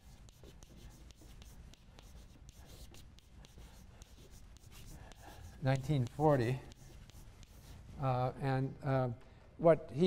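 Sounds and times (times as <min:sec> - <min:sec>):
chalk scratching on blackboard: 0:00.0 - 0:07.9.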